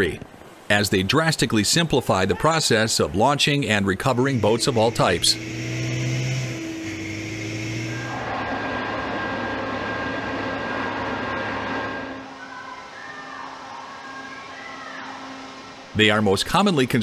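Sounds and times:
machinery rushing with whining tones: 4.0s - 12.4s
low engine hum: 4.4s - 12.2s.

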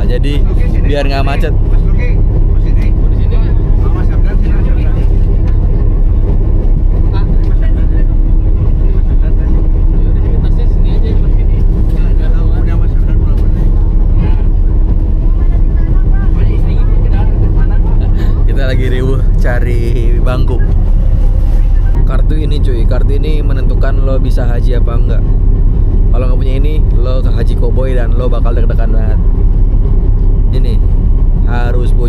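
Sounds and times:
coach engine and road rumble: 0.0s - 32.0s.

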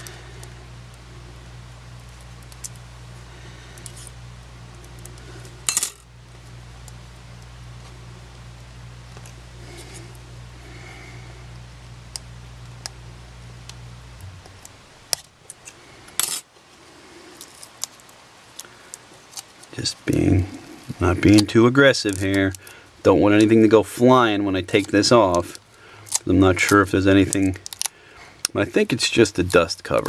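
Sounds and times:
steady low hum: 0.0s - 30.0s
small parts clicking on metal: 24.7s - 28.6s.

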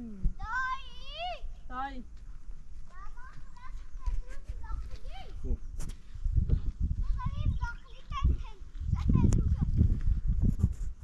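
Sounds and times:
child's high voice: 0.4s - 1.6s, 2.9s - 5.4s, 7.0s - 9.9s.

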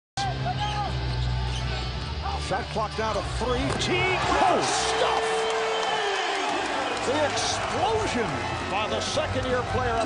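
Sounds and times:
crowd noise: 0.2s - 10.0s.

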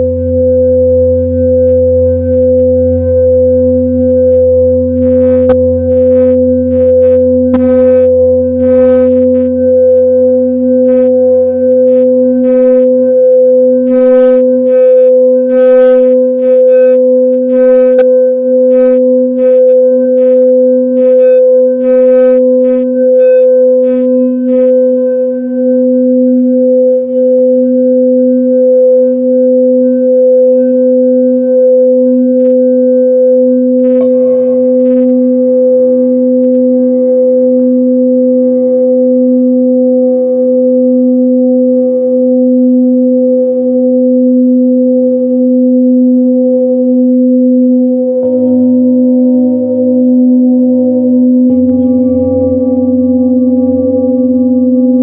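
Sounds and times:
singing bowl tone: 0.0s - 55.0s
second bowl tone: 33.8s - 37.2s, 47.5s - 55.0s
bright high overtones: 33.9s - 36.3s, 48.2s - 55.0s.

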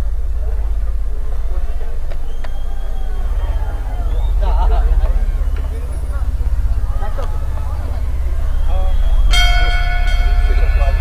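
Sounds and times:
low pulsing drone: 0.0s - 11.0s.

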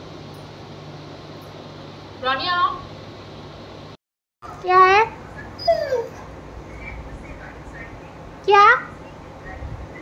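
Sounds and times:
dog whining: 5.4s - 6.3s.

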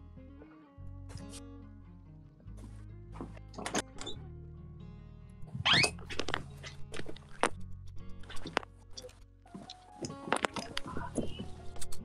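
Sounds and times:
music with low sustained notes: 0.0s - 12.0s.

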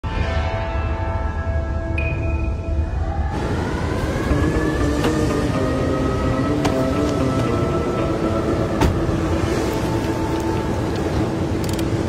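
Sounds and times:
sustained drone of held tones: 0.2s - 11.8s.

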